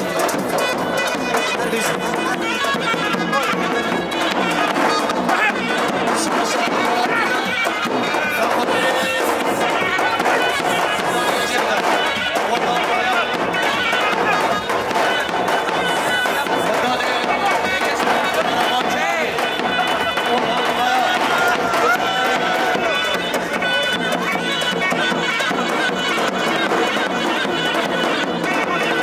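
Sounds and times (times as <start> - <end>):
crowd voices: 0.0 - 29.0
reed-pipe melody: 0.0 - 29.0.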